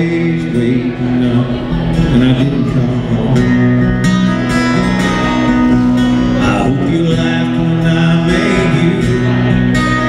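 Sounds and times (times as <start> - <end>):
acoustic guitars playing country music: 0.0 - 10.0.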